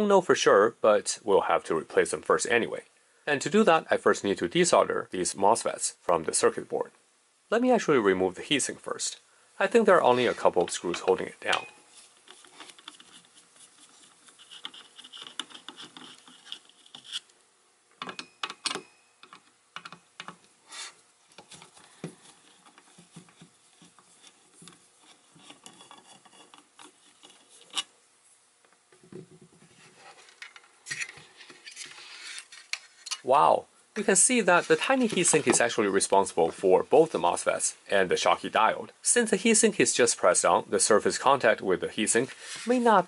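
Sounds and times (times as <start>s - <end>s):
clicks and scrapes of handling: 10.1s - 17.4s, 18.0s - 28.0s, 29.0s - 33.3s, 34.4s - 35.8s.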